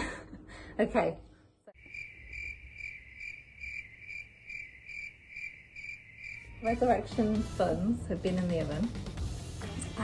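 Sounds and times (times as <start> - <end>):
cricket chirping: 1.8 - 6.7.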